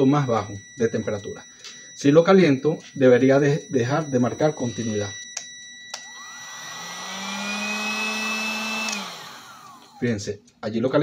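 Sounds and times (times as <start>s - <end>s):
multimeter beep: 0.0s - 9.7s
heat gun fan whining: 5.9s - 10.2s
heat gun switch click: 8.7s - 9.2s.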